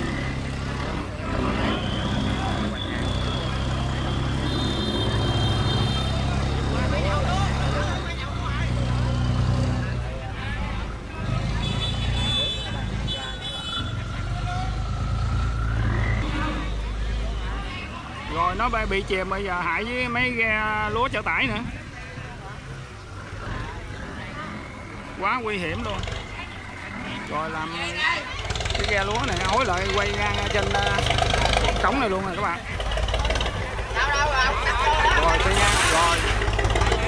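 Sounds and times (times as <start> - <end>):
boat engine running: 28.3 - 37.0.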